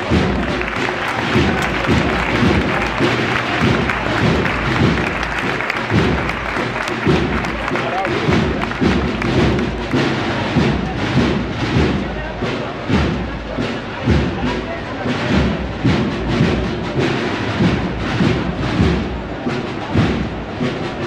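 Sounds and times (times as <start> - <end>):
crowd voices: 0.0 - 21.0
marching band drums: 0.0 - 21.0.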